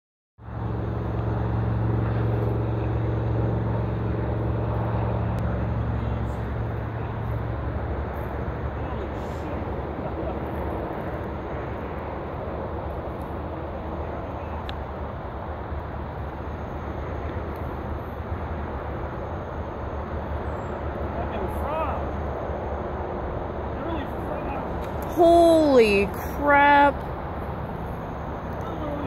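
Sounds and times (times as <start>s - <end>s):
constant rushing background: 0.4s - 29.0s
engine droning: 0.4s - 29.0s.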